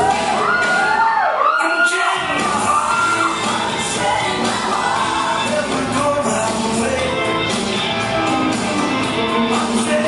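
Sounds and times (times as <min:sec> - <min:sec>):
audience cheering and whooping: 0:00.0 - 0:05.6
cha-cha dance music: 0:00.0 - 0:10.0.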